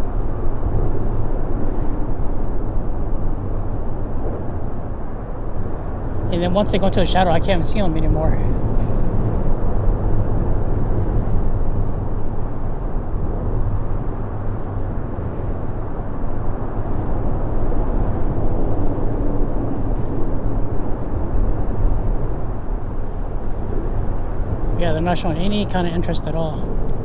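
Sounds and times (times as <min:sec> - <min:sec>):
low rumble of road traffic: 0:00.0 - 0:27.0.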